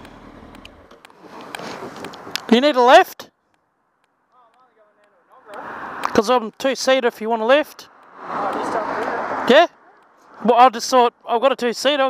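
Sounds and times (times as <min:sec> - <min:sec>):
motorcycle engine rumbling: 0:00.0 - 0:10.6.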